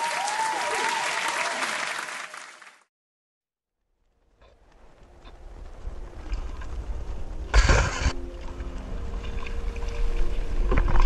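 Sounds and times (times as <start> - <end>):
water splashing: 6.1 - 11.0.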